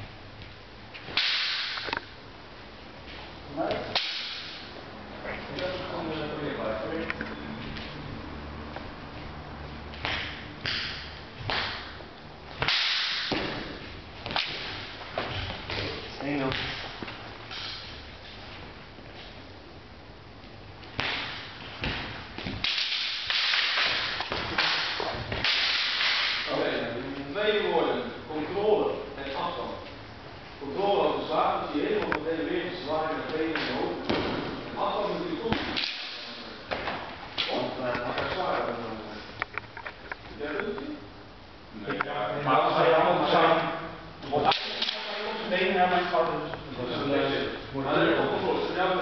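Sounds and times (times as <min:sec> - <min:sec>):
wooden swords clacking: 0:01.0 - 0:02.1, 0:03.7 - 0:04.7, 0:12.6 - 0:15.9, 0:20.9 - 0:26.5, 0:35.5 - 0:37.6.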